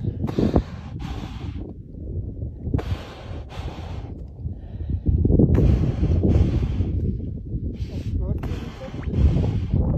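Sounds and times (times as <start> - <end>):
wind buffeting microphone: 0.0 - 9.9
seal breathing through nostrils: 2.7 - 4.9, 5.6 - 7.1.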